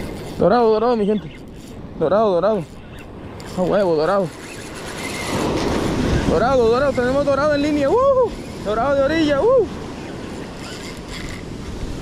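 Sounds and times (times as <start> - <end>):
wind buffeting the microphone: 0.0 - 12.0
surf washing up the beach: 5.2 - 10.6, 11.4 - 12.0.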